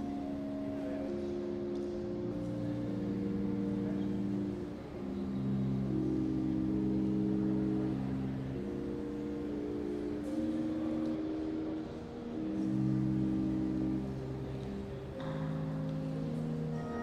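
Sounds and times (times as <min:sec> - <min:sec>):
pipe organ chords: 0:00.0 - 0:17.0.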